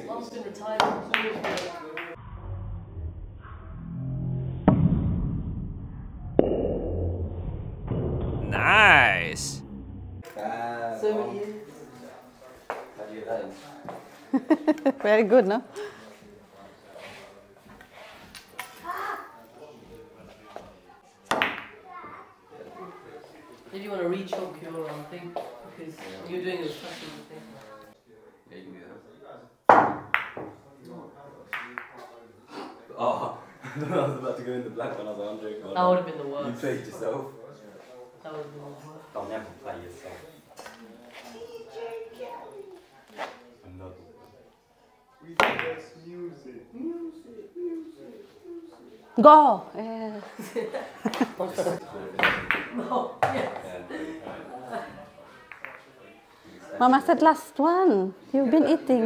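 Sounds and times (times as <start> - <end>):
faint voices: 8.4 - 9.6
person calling out: 8.4 - 9.6.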